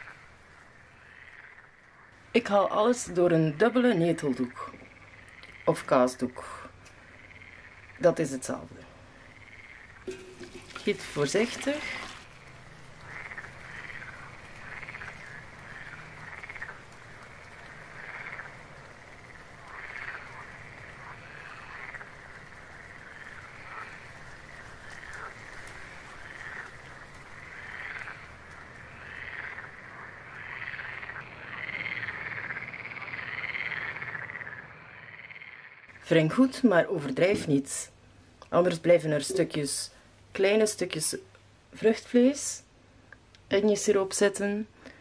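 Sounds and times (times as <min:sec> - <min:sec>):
frogs croaking: 0:00.0 - 0:42.0.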